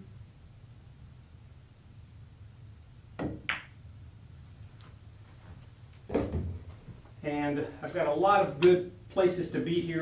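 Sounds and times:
cue striking cue ball: 0:03.2 - 0:03.8
pool balls clicking: 0:03.2 - 0:03.8.

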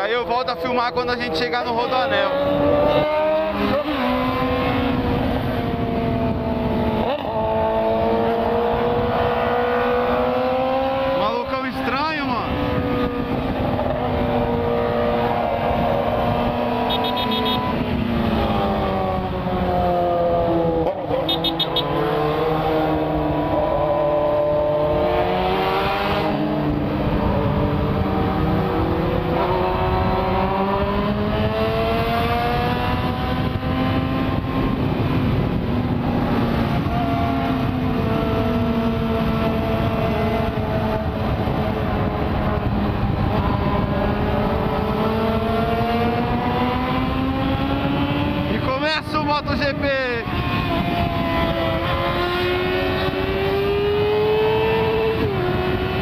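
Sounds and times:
motorcycle engine: 0:00.0 - 0:56.0
wind noise: 0:00.0 - 0:56.0.

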